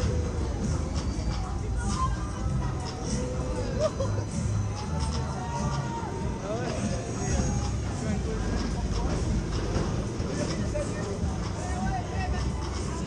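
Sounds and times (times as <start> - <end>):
pendulum fairground ride running: 0.0 - 13.0.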